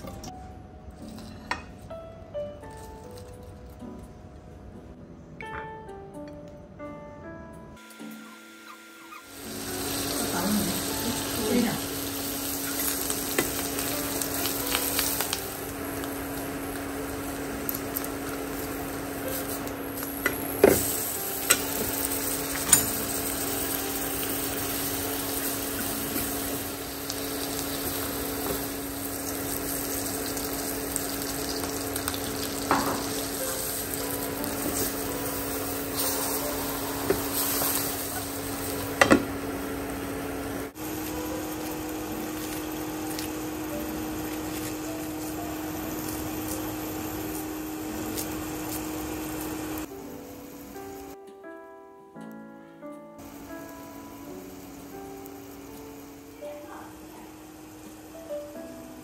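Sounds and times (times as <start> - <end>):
butter sizzling in a frying pan: 9.2 - 51.1, 53.2 - 58.1.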